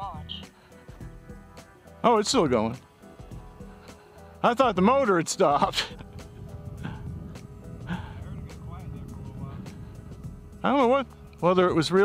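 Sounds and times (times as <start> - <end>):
background music: 0.0 - 12.0
person laughing: 5.5 - 7.1, 7.8 - 8.3
low rumble: 6.0 - 11.6
faint voices: 7.8 - 11.5.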